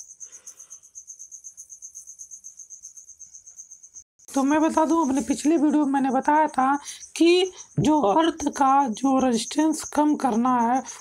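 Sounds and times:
insect trilling: 0.0 - 11.0.

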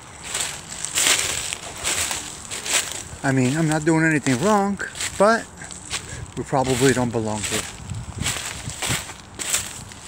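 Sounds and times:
footsteps crunching dry leaves: 0.0 - 10.0.

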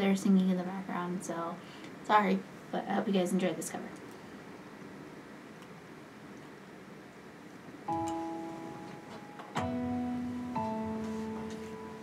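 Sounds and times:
pop instrumental backing track: 7.9 - 12.0.

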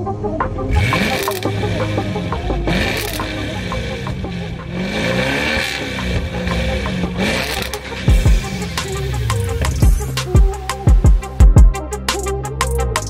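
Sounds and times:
background music with beat: 0.0 - 13.0
car engine revving: 0.4 - 11.4.

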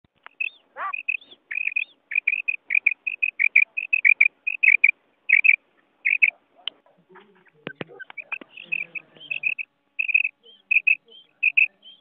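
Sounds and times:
quail chirping: 0.2 - 6.4, 7.1 - 12.0.

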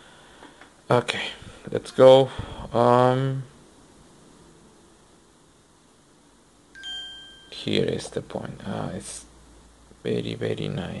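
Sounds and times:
faint room noise: 0.0 - 11.0
high-pitched phone beep: 6.8 - 7.6.

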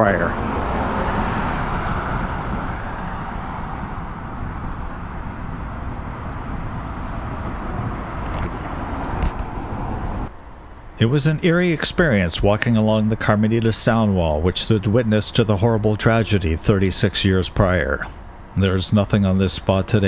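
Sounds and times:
car passing close by: 0.0 - 10.3
steady traffic hum: 0.0 - 20.0.

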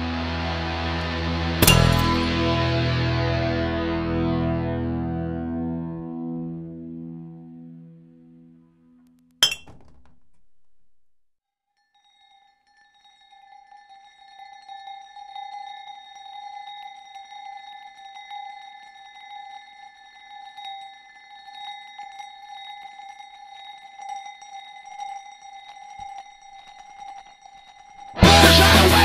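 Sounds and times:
sustained ringing tone: 12.2 - 28.4.

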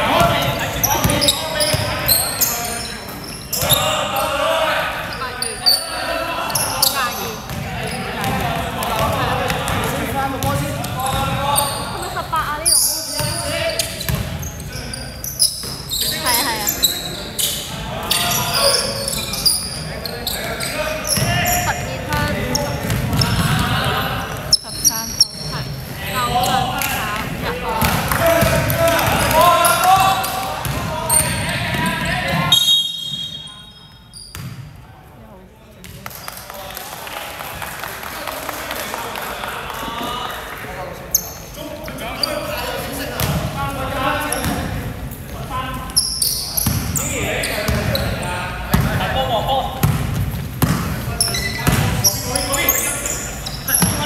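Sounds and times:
players shouting: 0.0 - 13.9, 16.0 - 32.6
basketball bouncing on wooden court: 0.2 - 2.0, 7.5 - 11.4, 13.2 - 14.5, 21.2 - 23.7, 26.4 - 32.4, 48.7 - 49.0, 49.8 - 52.1.

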